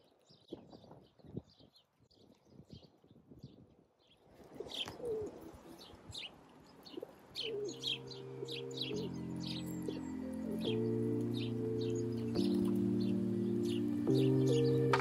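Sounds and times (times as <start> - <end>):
small birds chirping: 0.0 - 15.0
lower gliding bird call: 7.4 - 15.0
soft background music chords: 7.4 - 15.0.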